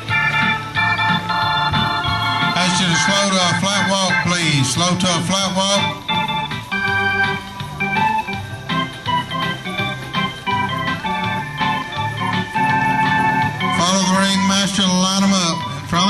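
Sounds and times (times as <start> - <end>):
organ music: 0.0 - 16.0.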